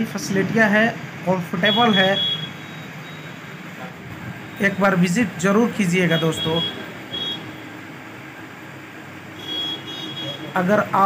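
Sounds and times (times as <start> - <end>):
short high-pitched beep: 1.8 - 3.4.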